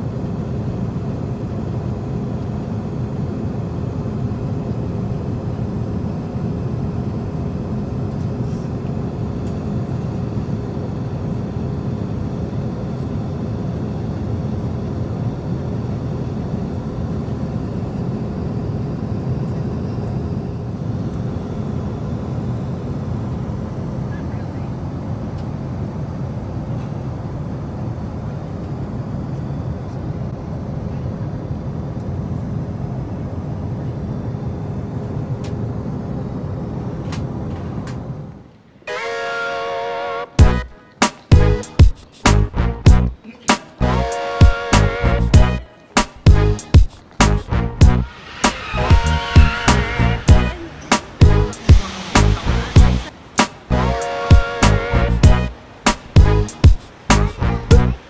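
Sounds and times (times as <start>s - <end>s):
constant hum: 0.0s - 58.0s
moving vehicle rumble: 46.3s - 54.0s.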